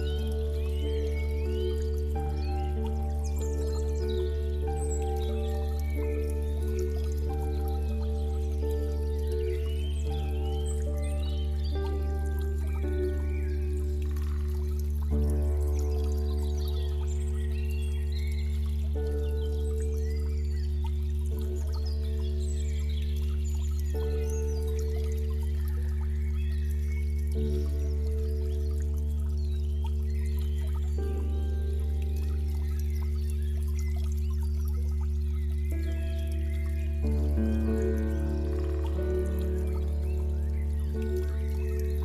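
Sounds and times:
deep bass drone: 0:00.0 - 0:42.0
slow ambient music: 0:00.0 - 0:42.0
trickling stream water: 0:00.0 - 0:42.0.

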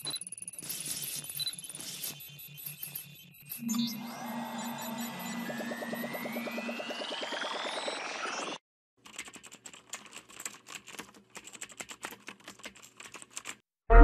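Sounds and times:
electronic sci-fi sweep tone: 0:02.2 - 0:08.6.

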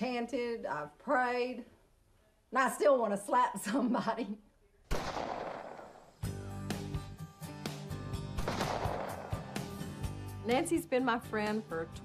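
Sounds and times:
handgun shot: 0:04.9 - 0:06.0, 0:08.4 - 0:09.7
sharp cracks: 0:04.9 - 0:06.2, 0:08.4 - 0:09.8
music: 0:06.2 - 0:12.0.

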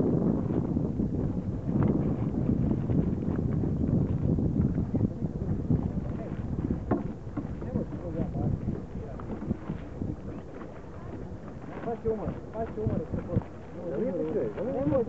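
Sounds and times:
wind buffeting microphone: 0:00.0 - 0:15.0
faint voices: 0:04.6 - 0:15.0.

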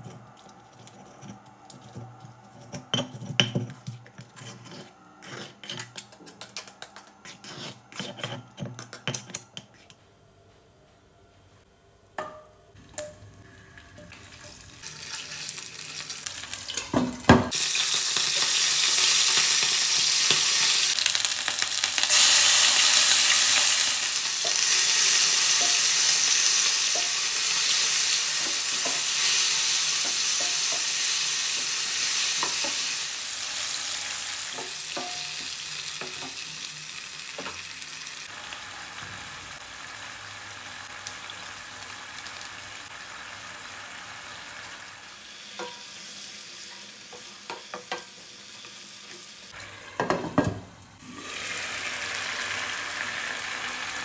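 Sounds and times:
spatula scraping a pan: 0:00.0 - 0:06.4, 0:07.2 - 0:09.8
chicken sizzling in hot oil: 0:13.4 - 0:50.2, 0:51.0 - 0:54.0.

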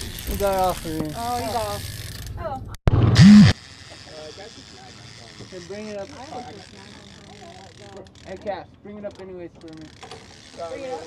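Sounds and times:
faint voices talking: 0:03.6 - 0:11.0.

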